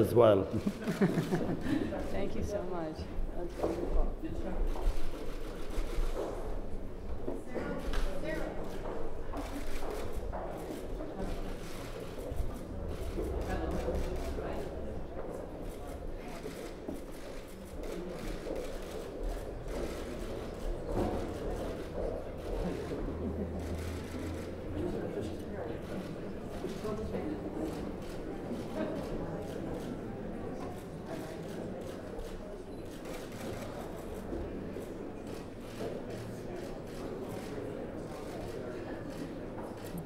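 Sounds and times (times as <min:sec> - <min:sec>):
murmur of many people talking: 0:00.0 - 0:40.0.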